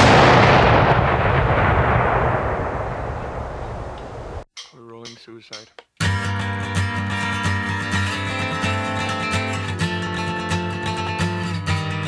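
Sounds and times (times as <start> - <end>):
explosion blast with rumble: 0.0 - 4.5.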